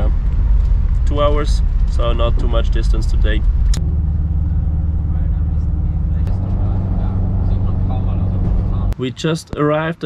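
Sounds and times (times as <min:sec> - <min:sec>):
camper van engine drone: 0:00.0 - 0:09.0
road noise inside cabin: 0:00.0 - 0:09.8.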